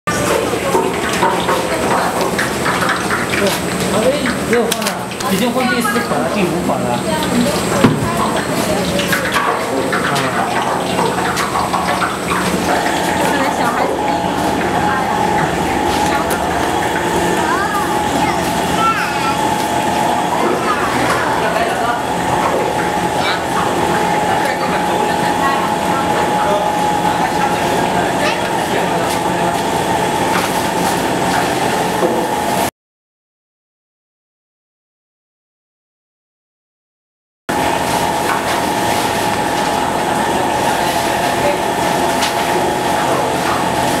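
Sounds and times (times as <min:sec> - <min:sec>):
people talking: 0:00.1 - 0:32.3, 0:38.0 - 0:44.0
machine running hum: 0:00.1 - 0:32.7, 0:37.5 - 0:44.0.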